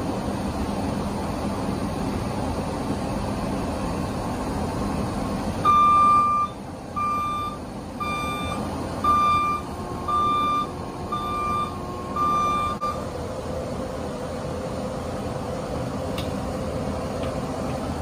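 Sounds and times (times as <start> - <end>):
loader engine running: 0.0 - 18.0
backup alarm beeping: 5.6 - 13.1.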